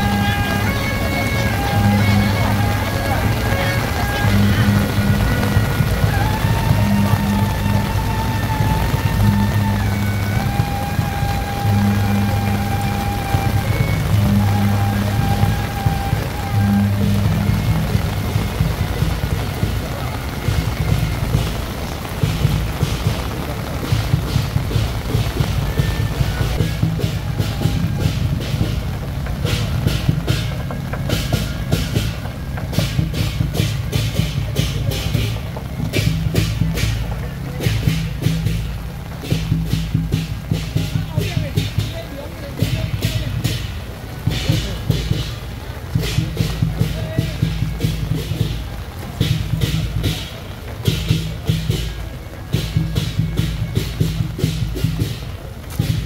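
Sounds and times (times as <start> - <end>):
procession music with pulsing bass: 0.0 - 37.2
heavy rain hissing: 0.0 - 56.0.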